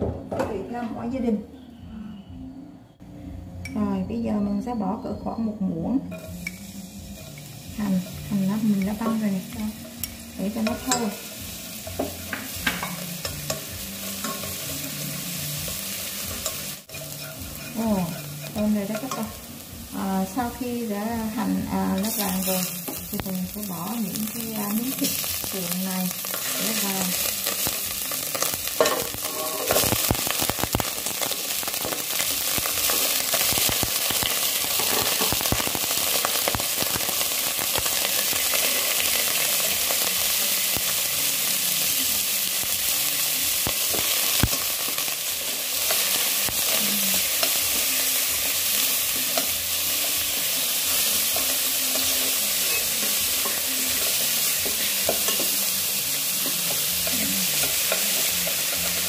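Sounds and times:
meat sizzling in oil: 0:06.2 - 0:59.0.

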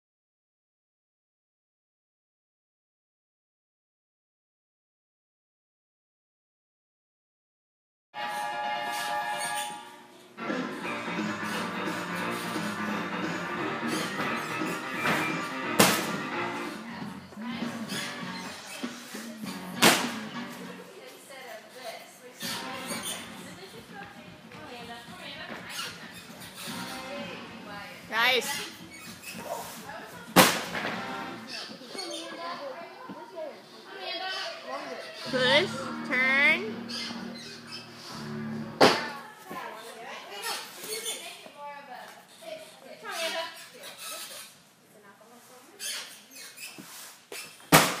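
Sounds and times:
background music: 0:10.4 - 0:18.6, 0:35.3 - 0:39.2
voices: 0:31.4 - 0:37.7.

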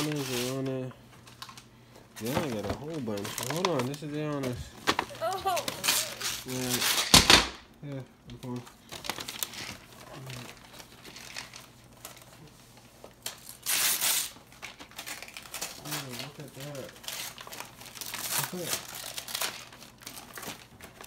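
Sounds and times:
wrapping paper tearing and crumpling: 0:00.0 - 0:07.3, 0:08.4 - 0:21.0.

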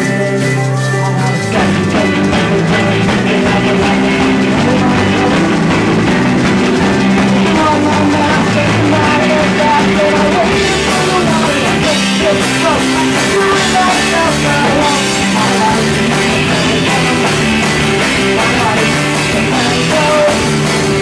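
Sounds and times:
rock band playing live: 0:00.0 - 0:21.0.

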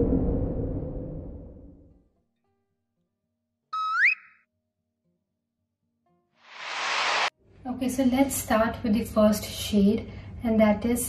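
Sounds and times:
brief hiss: 0:06.5 - 0:07.3.

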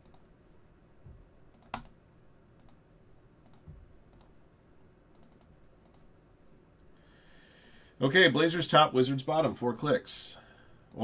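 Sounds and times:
computer keyboard and mouse clicks: 0:00.0 - 0:00.3, 0:01.5 - 0:02.0, 0:02.6 - 0:02.8, 0:03.4 - 0:04.3, 0:05.1 - 0:06.1.

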